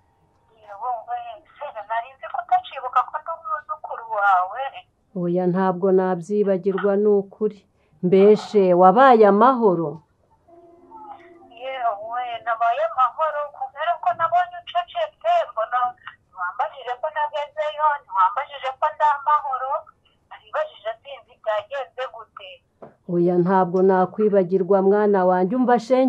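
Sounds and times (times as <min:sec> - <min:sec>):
person speaking over phone: 0:00.6 - 0:04.8, 0:11.0 - 0:22.6
person talking on telephone: 0:00.6 - 0:04.8, 0:11.0 - 0:22.6.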